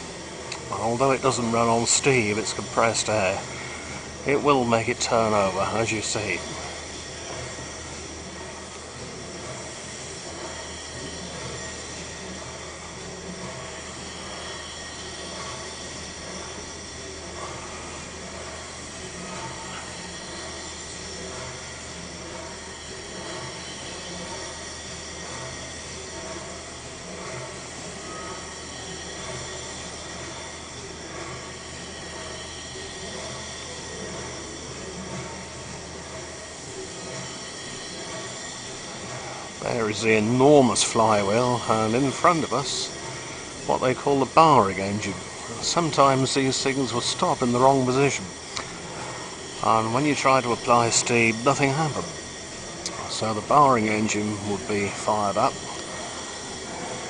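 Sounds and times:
steam engine running steadily: 0.0s - 57.0s.

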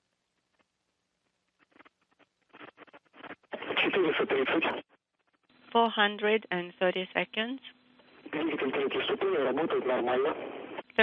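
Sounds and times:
person speaking over radio: 3.6s - 4.8s, 8.3s - 10.4s.

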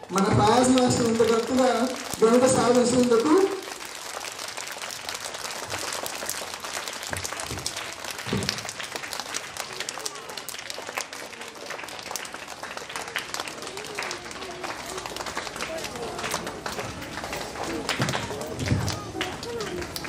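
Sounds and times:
audience applauding: 0.0s - 20.0s
faint voices: 9.1s - 20.0s.

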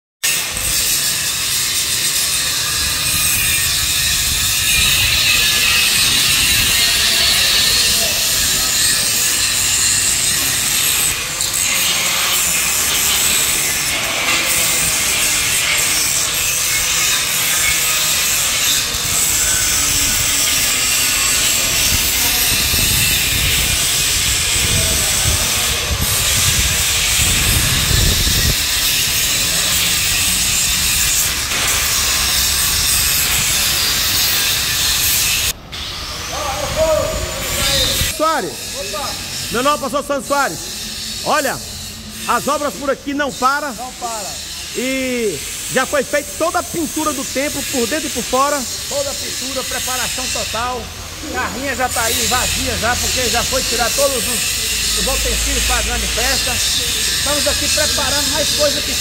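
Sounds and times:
angle grinder cutting steel: 0.2s - 59.0s.

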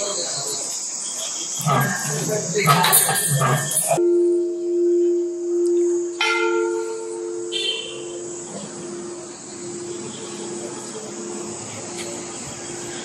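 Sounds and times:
large brass bell ringing: 1.6s - 13.0s.

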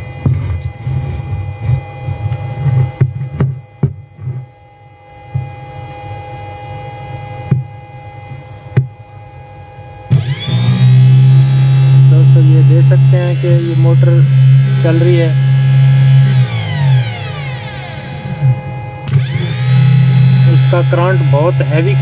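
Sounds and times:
cooling fan whine: 0.0s - 22.0s
water pump motor humming: 10.1s - 22.0s.

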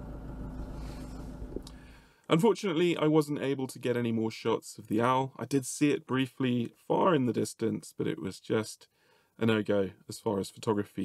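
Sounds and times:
vehicle engine rumbling: 0.0s - 2.0s
faint steady hum: 0.0s - 2.4s.

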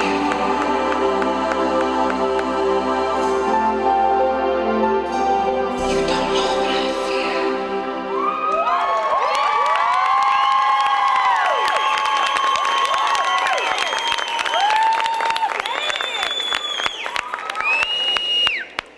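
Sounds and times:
music track: 0.0s - 9.4s
audience cheering and screaming: 8.0s - 18.7s
clapping: 8.5s - 18.9s.

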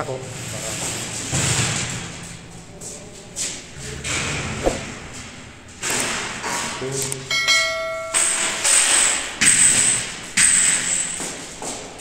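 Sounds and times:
indistinct voices: 0.0s - 5.7s
handling noise: 0.8s - 12.0s.

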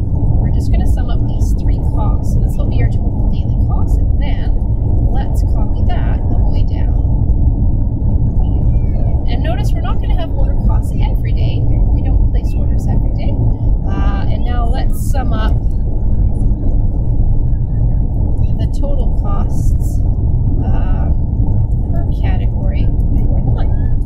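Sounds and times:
loud low rumbling: 0.0s - 24.0s.

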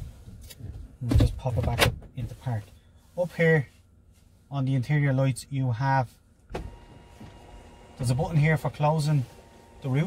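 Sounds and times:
electric motor whining: 6.6s - 8.3s.

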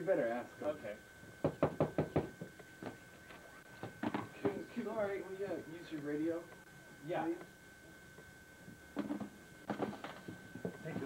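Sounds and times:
knocking on wooden door: 1.4s - 2.4s.

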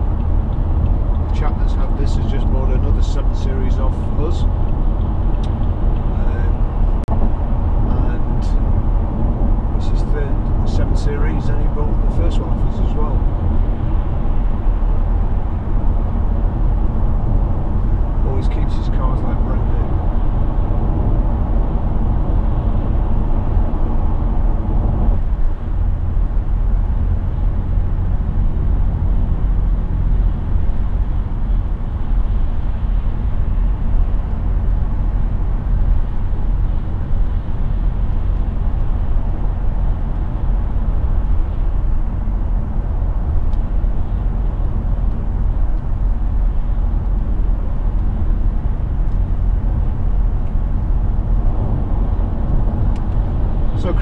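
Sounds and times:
diesel engine drone: 0.0s - 54.0s
tyres rumbling on road: 0.0s - 54.0s.

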